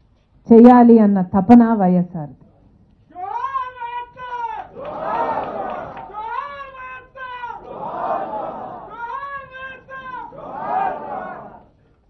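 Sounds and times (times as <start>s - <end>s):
long high-pitched shout: 3.2s - 11.5s.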